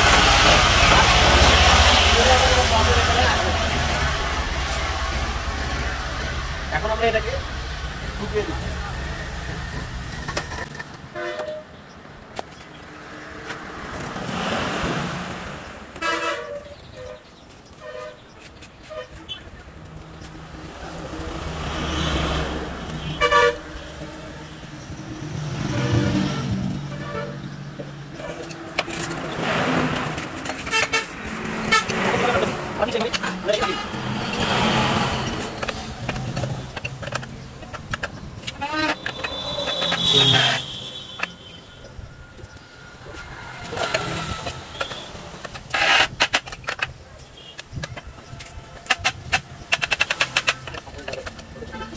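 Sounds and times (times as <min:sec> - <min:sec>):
road traffic passing: 0:00.0 - 0:51.9
vehicle horn toots: 0:16.0 - 0:17.2, 0:23.0 - 0:24.2, 0:38.6 - 0:42.0, 0:44.6 - 0:45.2.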